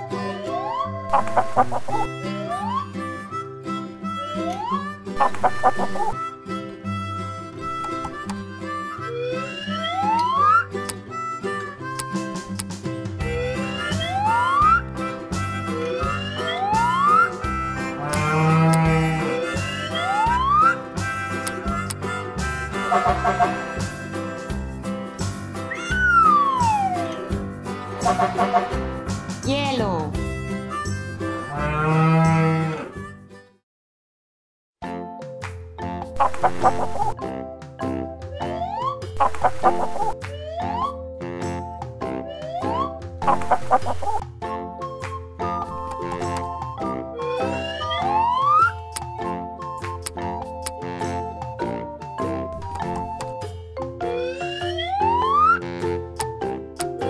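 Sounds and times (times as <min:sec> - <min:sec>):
cheerful backing music: 0:00.0 - 0:33.5, 0:34.8 - 0:57.0
bull mooing: 0:17.8 - 0:20.2, 0:31.4 - 0:33.0.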